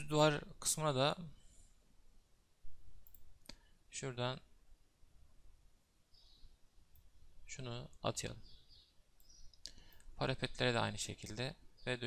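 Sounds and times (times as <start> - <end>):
computer mouse click: 3.0 - 3.6.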